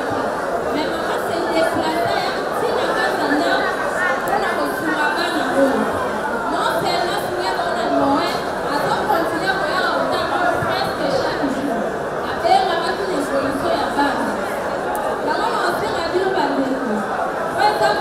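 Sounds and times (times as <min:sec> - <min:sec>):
woman speaking into a microphone: 0:00.0 - 0:14.6, 0:15.2 - 0:18.0
background chatter: 0:00.0 - 0:18.0.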